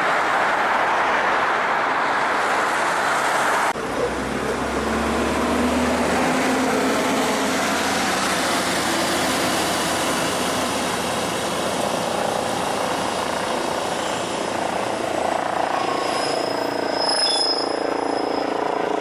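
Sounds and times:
street traffic rushing: 0:00.0 - 0:19.0.

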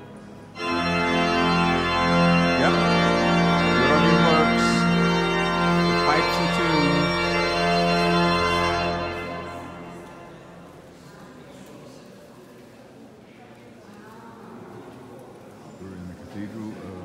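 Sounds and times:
church organ chords: 0:00.0 - 0:11.0.

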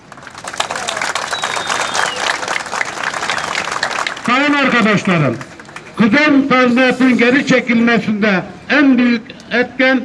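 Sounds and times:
crowd applauding: 0:00.0 - 0:06.1.

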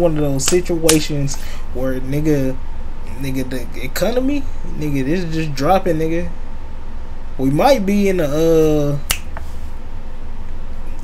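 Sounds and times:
low hum: 0:00.0 - 0:11.0
finger snap: 0:09.0 - 0:09.5.

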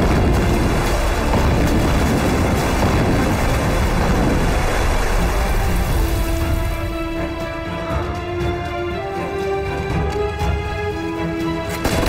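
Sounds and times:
spray falling like heavy rain: 0:00.0 - 0:07.2
underwater explosions: 0:00.0 - 0:08.5
dramatic film score music: 0:00.0 - 0:12.0.

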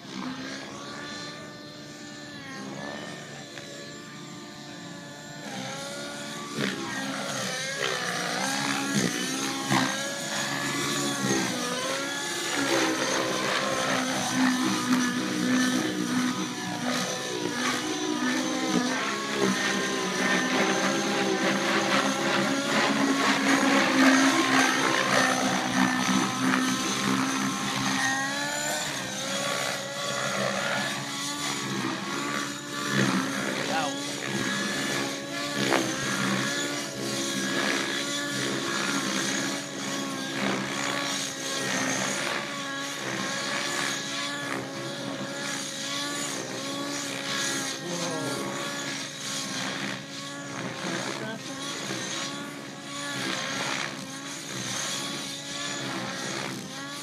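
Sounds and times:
model helicopter motor and rotor: 0:00.0 - 0:57.0.

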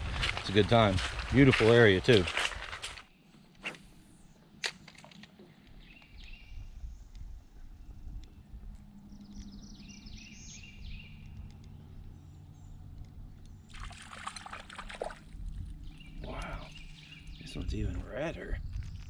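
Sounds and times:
low steady rumble: 0:06.3 - 0:19.0
water trickling around kayak: 0:11.1 - 0:17.2.

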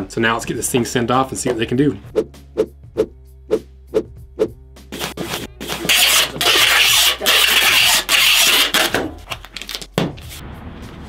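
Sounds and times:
packing tape pulled from tape gun: 0:05.0 - 0:09.9.

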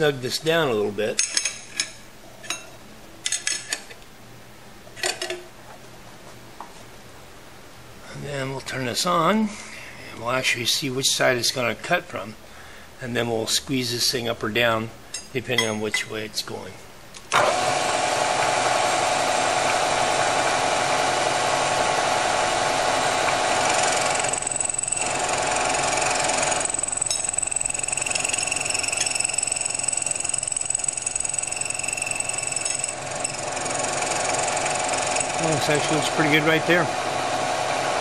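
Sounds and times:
milling machine spindle running: 0:17.3 - 0:38.0
cutter whine on metal: 0:17.4 - 0:38.0.

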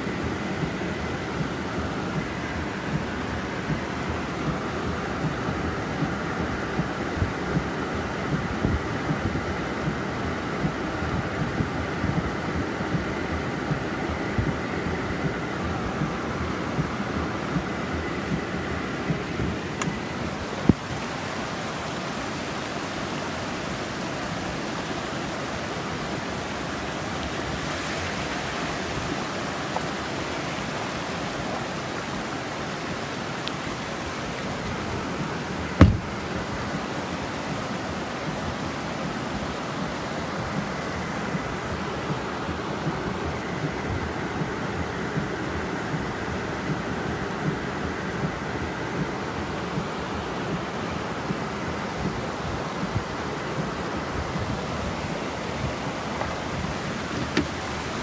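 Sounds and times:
heavy rain on vehicle roof: 0:00.0 - 0:58.0
loud thump: 0:35.8 - 0:36.1
sharp knock: 0:35.8 - 0:36.1.

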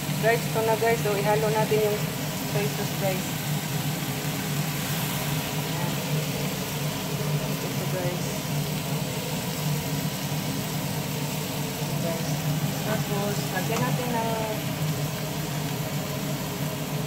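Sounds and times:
shrimp sizzling in a pan: 0:00.0 - 0:17.0.

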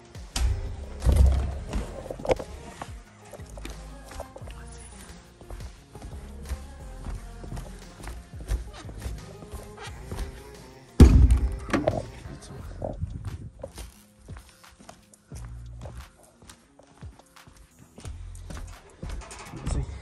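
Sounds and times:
music playing: 0:00.0 - 0:20.0
speaker set down on wooden floor: 0:11.0 - 0:12.1.

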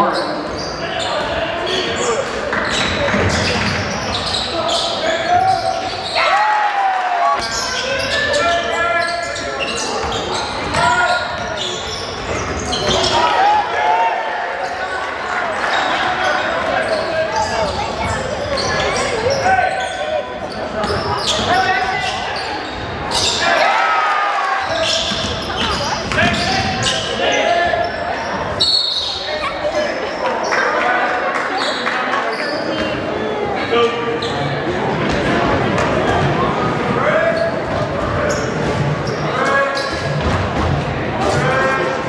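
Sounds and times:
sneakers squeaking: 0:00.0 - 0:06.4, 0:07.3 - 0:13.6, 0:14.5 - 0:23.6, 0:24.6 - 0:41.5
basketball bouncing on wooden court: 0:25.0 - 0:26.8.

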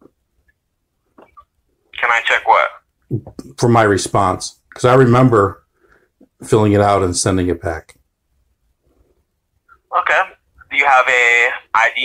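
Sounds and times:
voice speaking: 0:02.0 - 0:03.8, 0:09.9 - 0:12.0.

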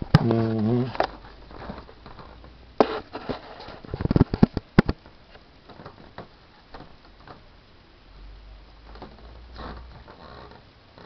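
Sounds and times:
soft rustling: 0:00.0 - 0:07.9.

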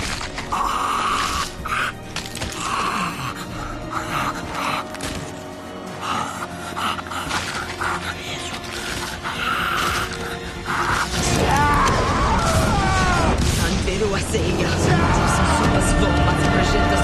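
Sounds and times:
dramatic background music: 0:00.0 - 0:17.0
man screaming and groaning: 0:10.8 - 0:13.5, 0:14.6 - 0:15.8.

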